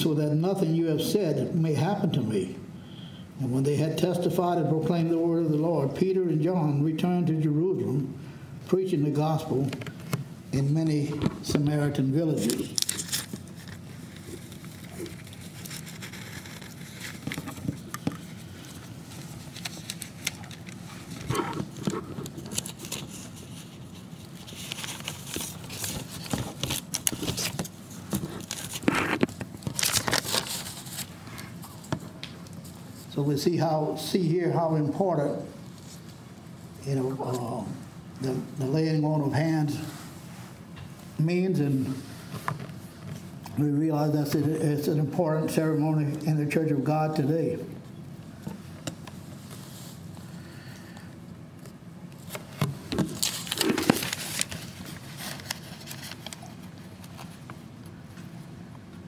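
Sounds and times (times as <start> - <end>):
low room hum: 0.0 - 59.0
paper pages rustling: 11.0 - 33.1, 51.6 - 58.4.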